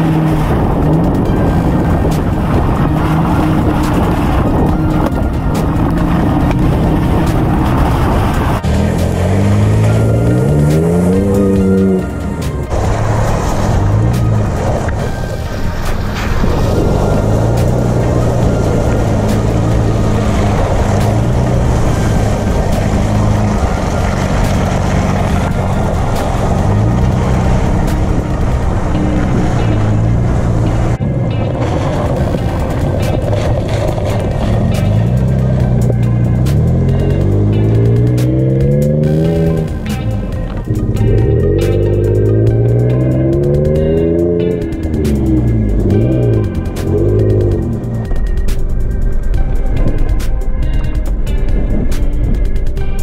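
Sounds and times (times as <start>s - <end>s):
tyre and water noise: 0.0s - 50.4s
car engine revving: 0.0s - 53.0s.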